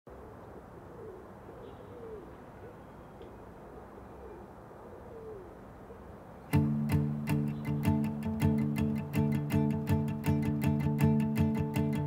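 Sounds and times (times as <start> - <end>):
pigeon cooing: 0.1 - 2.8, 3.7 - 6.0.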